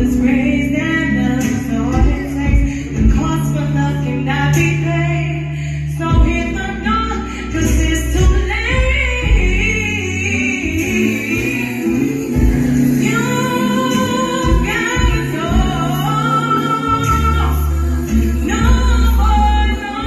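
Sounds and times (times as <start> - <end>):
amplified backing music: 0.0 - 20.0
deep held bass notes: 0.0 - 20.0
woman singing into microphone: 0.0 - 20.0.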